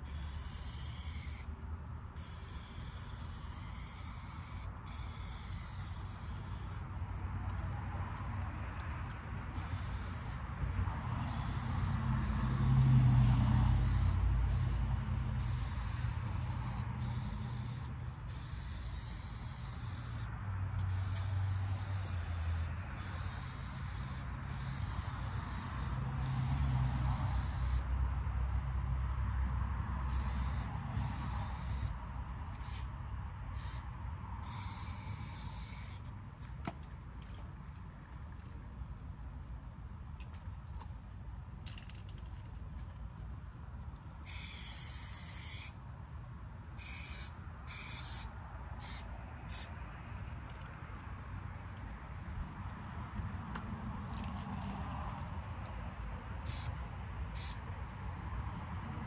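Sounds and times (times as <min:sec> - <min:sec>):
spray paint can hissing: 0:00.0 - 0:01.5, 0:02.2 - 0:06.8, 0:09.5 - 0:10.4, 0:11.3 - 0:27.8, 0:30.1 - 0:32.0, 0:32.6 - 0:32.9, 0:33.5 - 0:36.0, 0:44.2 - 0:45.8, 0:46.8 - 0:49.7, 0:56.4 - 0:56.8, 0:57.4 - 0:57.6.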